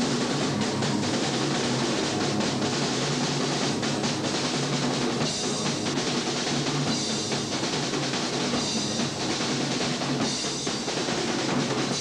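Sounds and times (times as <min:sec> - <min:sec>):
bass guitar: 0:00.0 - 0:07.6
drum kit: 0:00.0 - 0:12.0.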